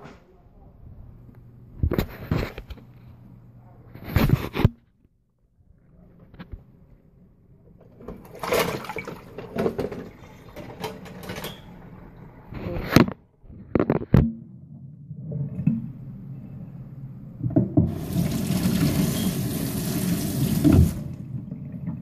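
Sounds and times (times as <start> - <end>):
running water rushing: 17.9 - 21.2.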